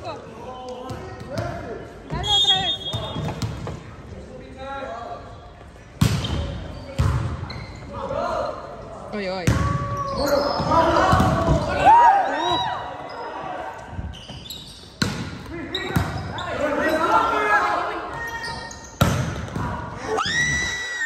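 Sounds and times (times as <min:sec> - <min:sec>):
sneaker squeaks on hardwood: 0:02.1 - 0:03.6, 0:06.2 - 0:07.9, 0:14.1 - 0:17.0
volleyball hits: 0:09.4 - 0:10.0, 0:10.9 - 0:11.8, 0:19.0 - 0:19.8.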